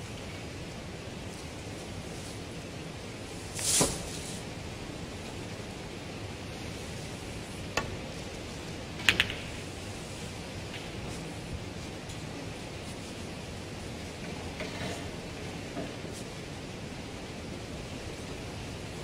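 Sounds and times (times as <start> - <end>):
cue striking ball click: 9.0 - 9.6
snooker balls colliding: 9.0 - 9.6.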